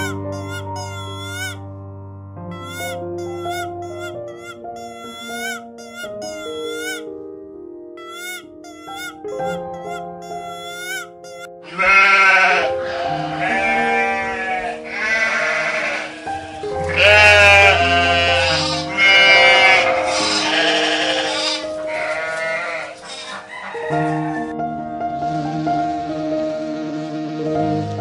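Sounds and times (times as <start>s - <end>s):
soft background music: 0.0s - 28.0s
sheep bleating: 8.0s - 23.5s.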